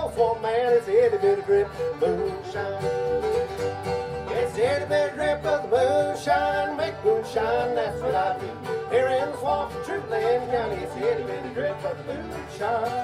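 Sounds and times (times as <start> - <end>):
lead voice singing: 0.0 - 3.2, 4.2 - 13.0
bluegrass band playing: 0.0 - 13.0.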